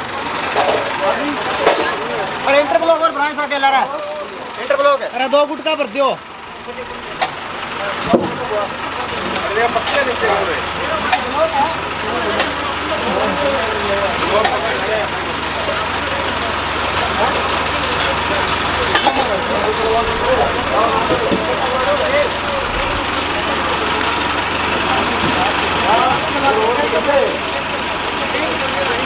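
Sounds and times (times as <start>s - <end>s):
heavy vehicle engine running: 0.0s - 29.0s
men's voices: 0.5s - 29.0s.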